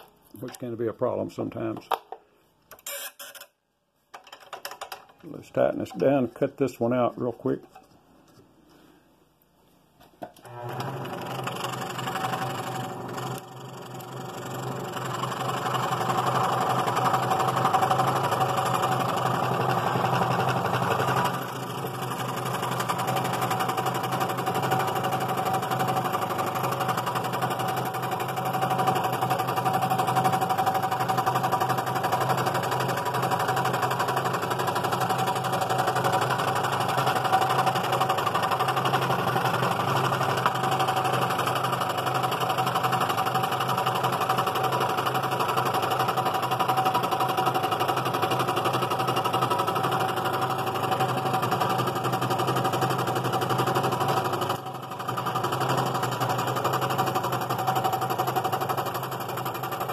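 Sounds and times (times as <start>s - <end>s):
scroll saw cutting wood: 10.4s - 43.4s.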